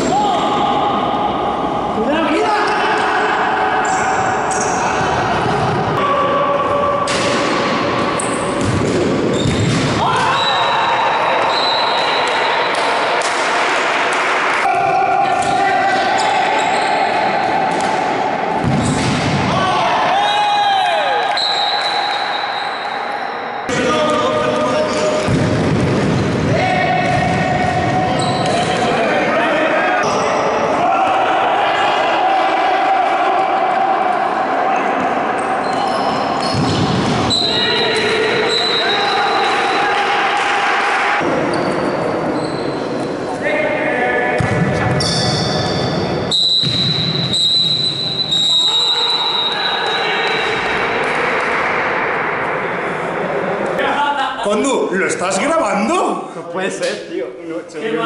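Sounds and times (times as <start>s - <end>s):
players calling out: 26.2s - 56.4s.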